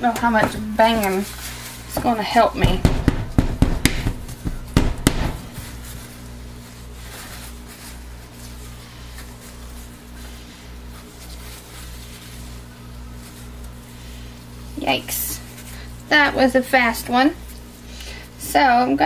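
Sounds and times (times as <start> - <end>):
steady low hum: 0.0 - 19.0
plastic mold knocking on stovetop: 2.0 - 5.6.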